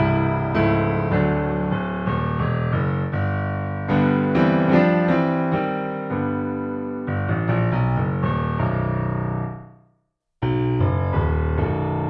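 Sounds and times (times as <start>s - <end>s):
low piano chords: 0.0s - 9.8s, 10.4s - 12.0s.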